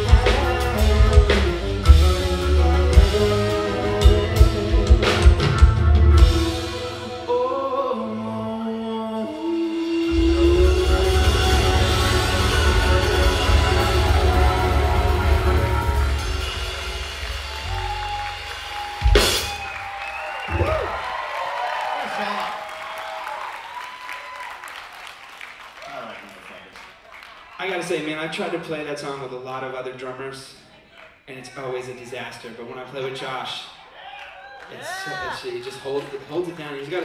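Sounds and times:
drum kit: 0:00.0 - 0:07.4, 0:09.4 - 0:21.2
man singing: 0:06.4 - 0:13.2
crowd cheering and applause: 0:10.2 - 0:28.5, 0:33.7 - 0:37.0.

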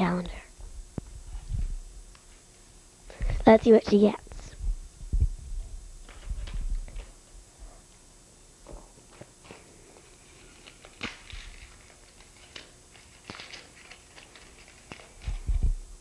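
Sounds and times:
wrapping paper rustling: 0:09.2 - 0:15.6.

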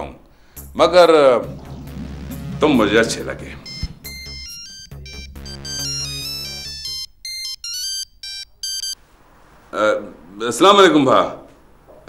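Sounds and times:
low held tones: 0:00.6 - 0:07.0
mobile phone ringtone melody: 0:03.7 - 0:09.0.

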